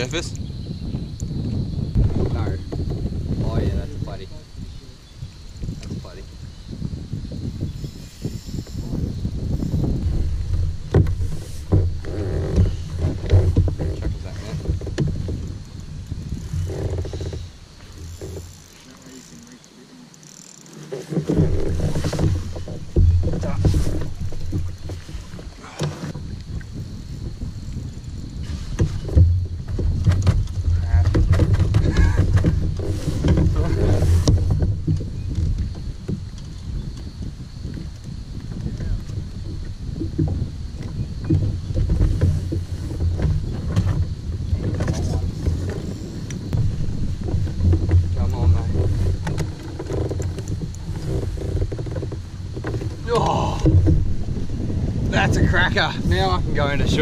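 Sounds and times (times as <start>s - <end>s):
wind rumble on microphone: 0.0s - 18.7s, 21.0s - 57.0s
knocks against a kayak: 1.9s - 3.8s, 10.0s - 15.5s, 20.9s - 26.3s, 28.5s - 36.6s, 37.7s - 57.0s
water splashing: 9.8s - 36.4s, 38.4s - 57.0s.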